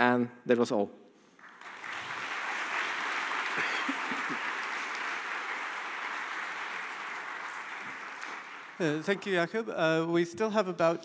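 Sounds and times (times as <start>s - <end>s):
audience applauding: 1.4s - 9.6s.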